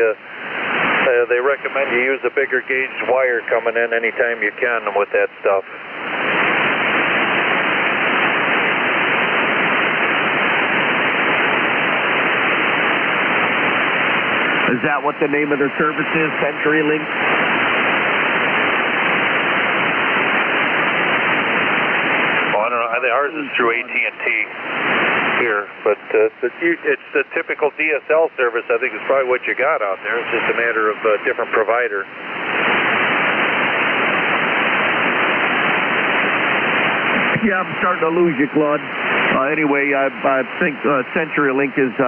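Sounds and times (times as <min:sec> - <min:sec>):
radio band noise hiss: 0:00.0 - 0:42.0.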